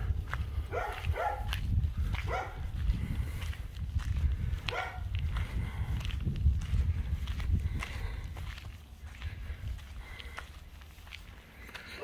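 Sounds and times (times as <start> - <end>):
wind rumble on microphone: 0.0 - 11.8
footsteps on dirt road: 0.0 - 12.0
dog barking: 0.7 - 1.5, 2.3 - 2.7, 4.7 - 5.1.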